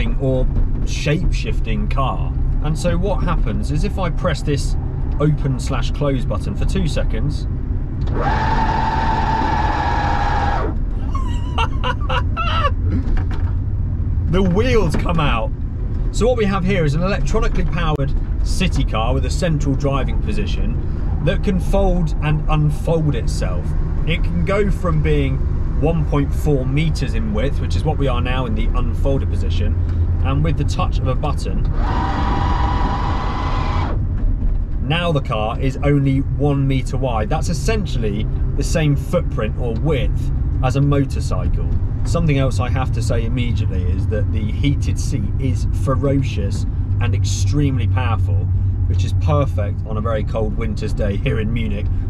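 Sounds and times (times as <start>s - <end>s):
low road rumble: 0.0s - 52.0s
mechanism high whine: 7.9s - 11.0s, 31.6s - 34.0s.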